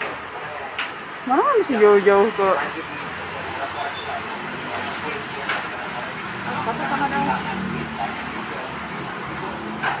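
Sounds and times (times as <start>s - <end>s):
people chattering: 0.0s - 10.0s
street noise: 0.0s - 10.0s.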